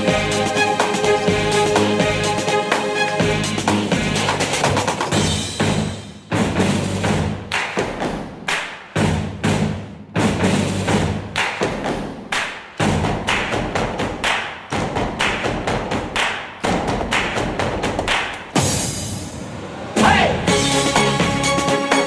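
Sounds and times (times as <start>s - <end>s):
backing track with bass line: 0.0s - 7.5s.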